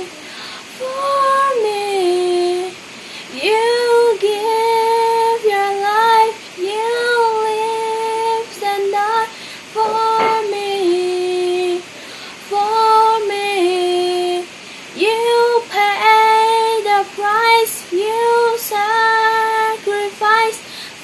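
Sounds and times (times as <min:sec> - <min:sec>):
girl singing unaccompanied: 0:00.0 - 0:21.0.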